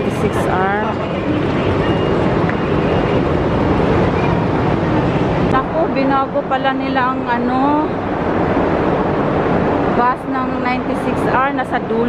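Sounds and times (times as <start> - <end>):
din of vehicle engines: 0.0 - 12.0.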